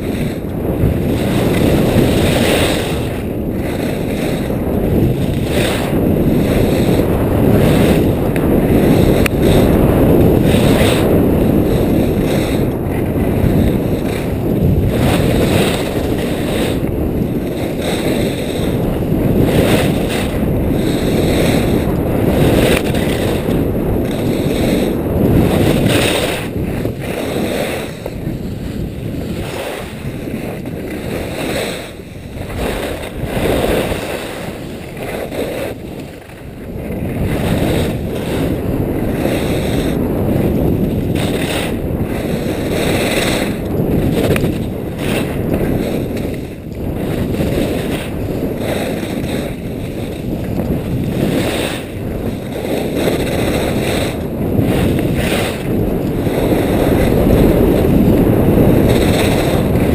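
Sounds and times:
skis carving on hard snow: 0.0s - 59.9s
wind rushing over microphone: 0.0s - 59.9s.

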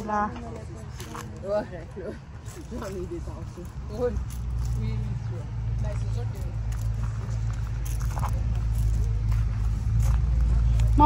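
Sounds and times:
steady low rumble: 2.2s - 11.0s.

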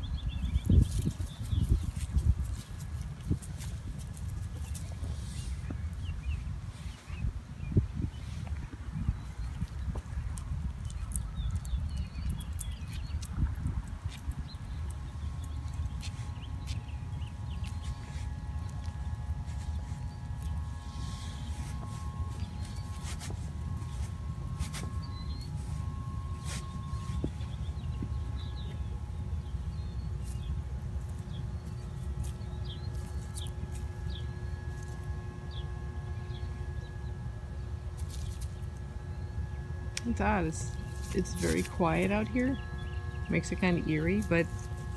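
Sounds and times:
faint steady hum: 0.0s - 44.9s
footsteps through grass and leaves: 0.7s - 7.2s, 15.1s - 28.9s, 40.2s - 42.6s, 43.3s - 44.9s
bird chirps: 19.9s - 34.9s, 40.7s - 44.1s.

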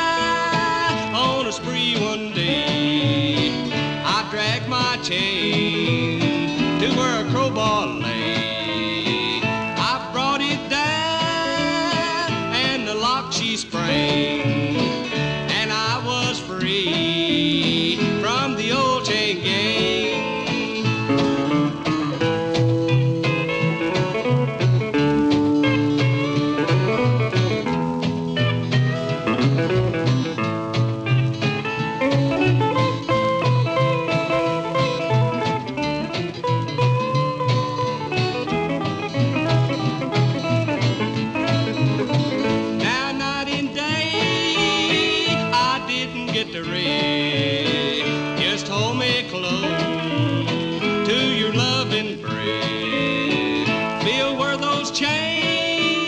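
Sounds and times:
country string band playing: 0.0s - 56.0s.

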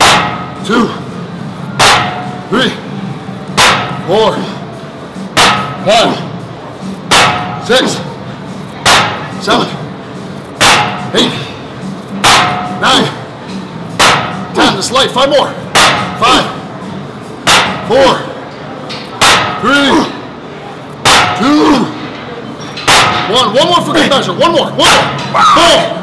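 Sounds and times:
weight thudding: 0.0s - 0.6s, 1.8s - 2.5s, 3.5s - 4.2s, 5.3s - 6.2s, 7.1s - 8.0s, 8.8s - 9.4s, 10.6s - 11.4s, 12.2s - 12.8s, 13.9s - 14.7s, 15.7s - 16.2s, 22.8s - 23.5s
background music: 0.0s - 22.1s.

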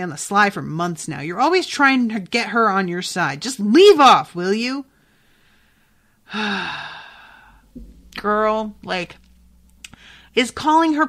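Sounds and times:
woman sighing: 6.3s - 7.8s.

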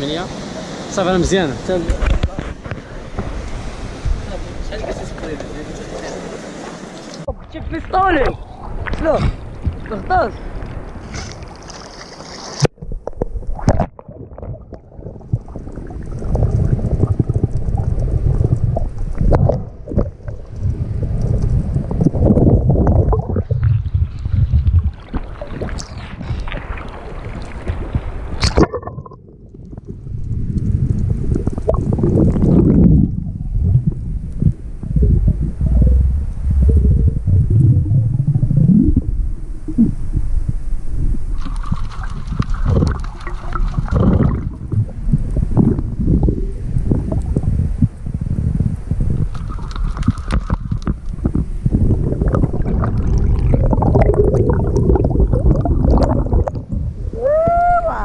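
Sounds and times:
underwater rumbling and gurgling: 7.2s - 12.0s, 12.6s - 58.0s.

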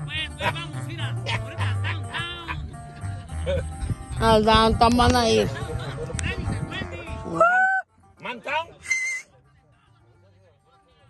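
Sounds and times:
shrill whistle: 8.8s - 9.3s.

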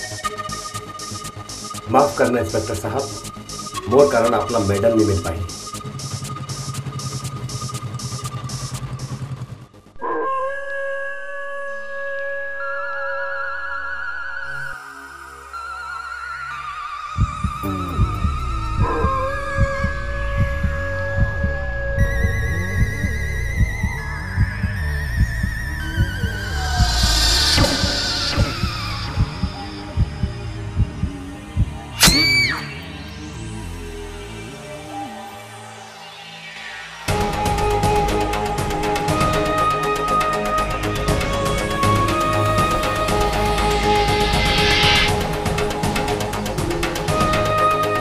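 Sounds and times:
pulsing beat: 0.0s - 9.7s, 17.2s - 32.1s, 37.1s - 48.0s
heartbeat thumps: 17.2s - 32.0s
high wailing sustained tone: 17.6s - 30.8s.

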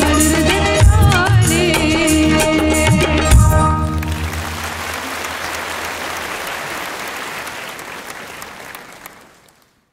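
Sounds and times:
audience applauding: 4.0s - 9.9s.

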